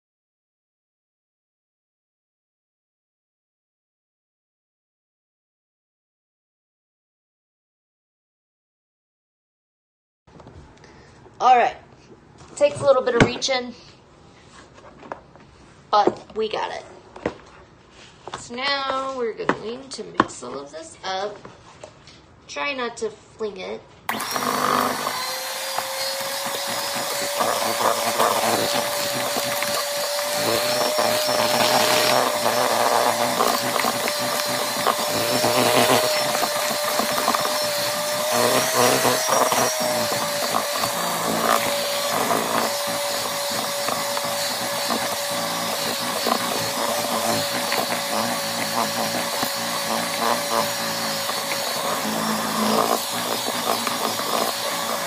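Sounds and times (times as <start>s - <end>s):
electric hand mixer whirring: 24.1s - 55.0s.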